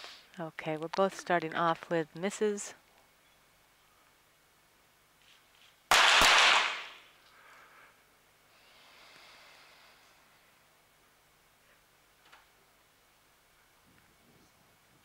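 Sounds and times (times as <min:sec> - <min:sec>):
pistol shots with echo: 0:05.9 - 0:07.0.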